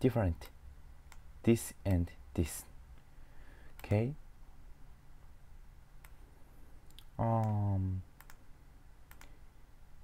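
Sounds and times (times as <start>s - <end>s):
low steady hum: 0.0s - 10.0s
faint computer clicks: 3.7s - 4.0s, 6.8s - 9.4s.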